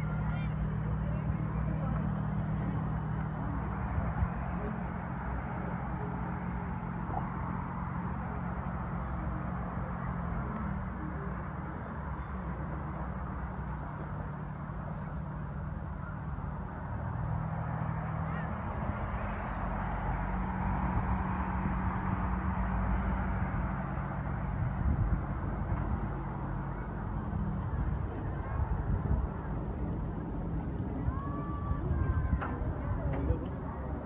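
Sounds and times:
steady low rumble: 0.0 - 34.0.

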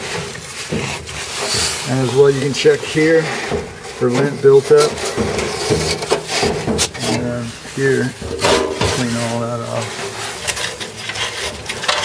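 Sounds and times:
gloved hand rustling in blower housing: 0.0 - 12.0.

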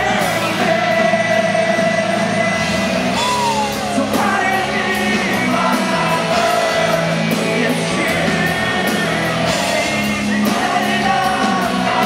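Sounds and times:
live rock band: 0.0 - 12.0
man singing: 0.0 - 12.0.

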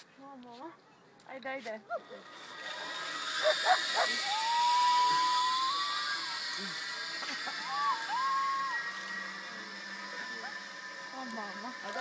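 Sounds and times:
zip-line trolley hissing on cable: 1.9 - 12.0
long high tones: 2.8 - 12.0.

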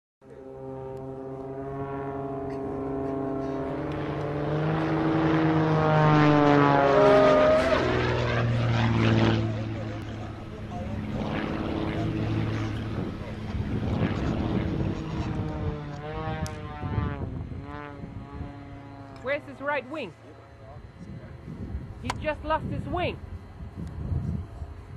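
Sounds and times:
propeller plane engine overhead: 0.2 - 24.9.

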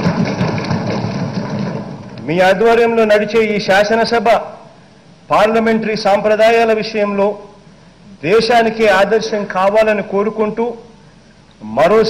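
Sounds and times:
people thumping desks: 0.0 - 2.3.

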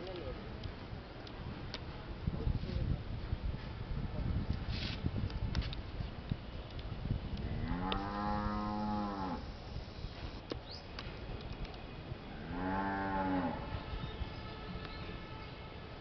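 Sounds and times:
cow mooing: 7.6 - 9.5, 12.4 - 13.7.

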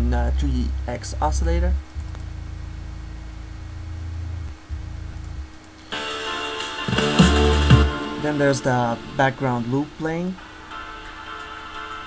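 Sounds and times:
synthesizer sub-bass notes: 0.0 - 6.1, 6.8 - 10.0.

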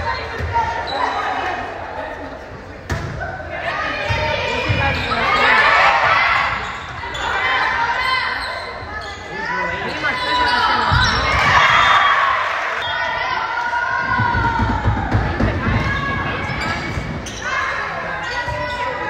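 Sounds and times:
people shouting in a hall: 0.0 - 19.0.

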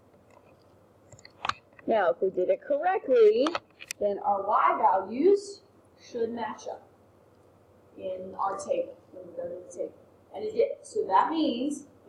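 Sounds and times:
woman's voice: 1.8 - 6.8, 8.0 - 11.9.

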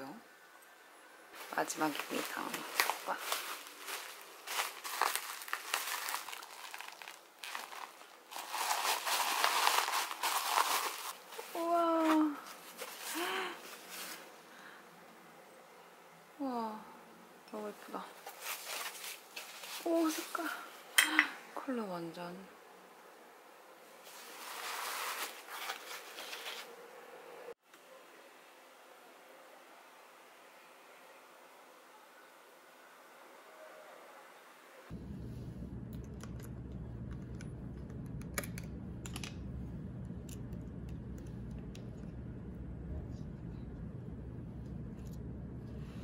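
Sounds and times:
bubble wrap crinkling: 1.4 - 14.3, 18.2 - 20.4, 24.0 - 26.7
packing paper rustling: 1.4 - 14.4, 18.2 - 20.3, 24.0 - 26.7.

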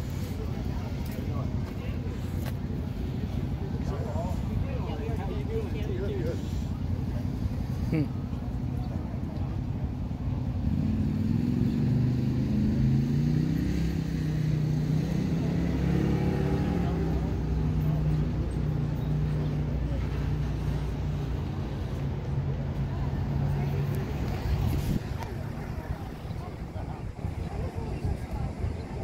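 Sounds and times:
vehicle engine humming: 0.0 - 29.0.

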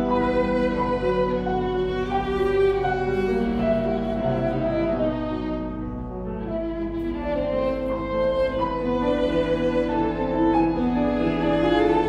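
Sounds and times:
piano accompaniment: 0.0 - 12.0
violin playing classical melody: 0.0 - 12.0.

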